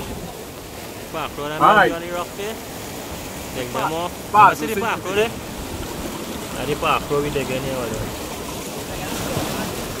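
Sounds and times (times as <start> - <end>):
sea water washing on rocks: 0.0 - 10.0
person speaking: 1.5 - 2.1, 3.6 - 5.3.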